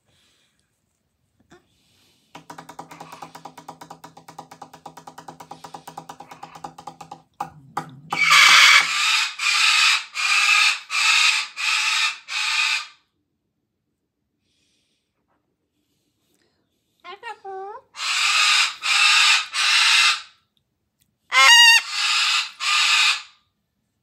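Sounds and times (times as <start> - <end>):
cockatoo screeching: 8.1 - 13.0, 18.0 - 20.3, 21.3 - 23.4.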